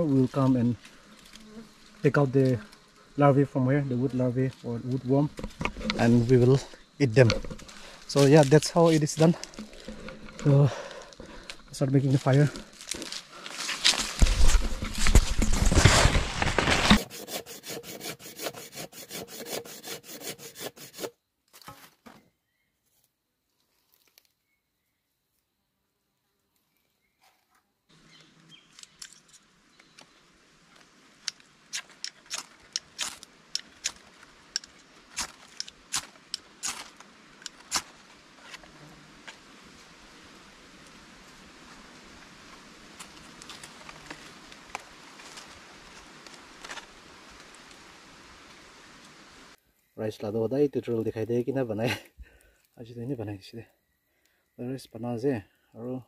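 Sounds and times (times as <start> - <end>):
fire starter scraping: 4.3 - 21.8, 31.2 - 38.7
footsteps through dry leaves: 12.0 - 17.0.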